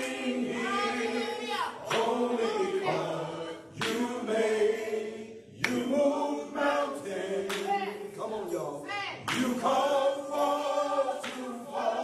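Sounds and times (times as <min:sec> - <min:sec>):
men singing gospel in harmony: 0:00.0 - 0:12.0.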